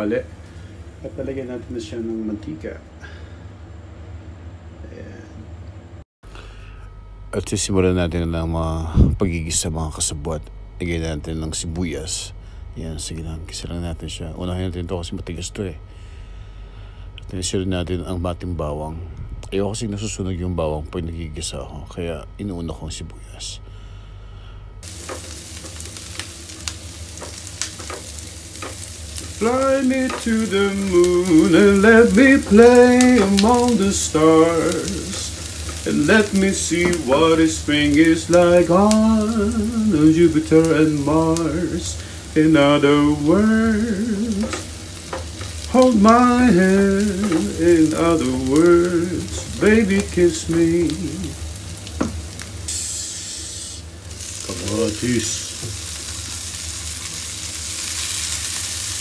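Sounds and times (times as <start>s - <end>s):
low steady hum: 0.0s - 59.0s
onion sizzling in hot oil: 24.8s - 59.0s.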